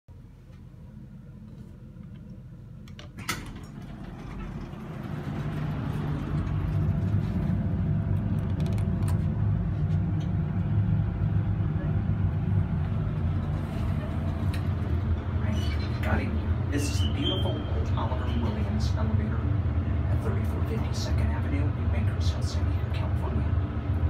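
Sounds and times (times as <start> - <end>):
elevator pump motor hum: 0.1 - 24.0.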